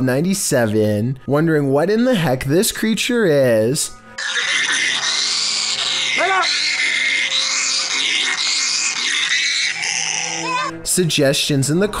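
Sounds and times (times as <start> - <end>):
background music: 0.0 - 12.0
animal crying in high wails: 4.2 - 10.8.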